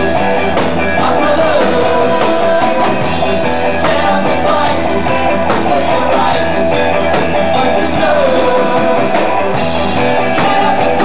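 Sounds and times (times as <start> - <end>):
bass: 0.0 - 11.0
drum kit: 0.0 - 11.0
electric guitar: 0.0 - 11.0
keyboard: 0.0 - 11.0.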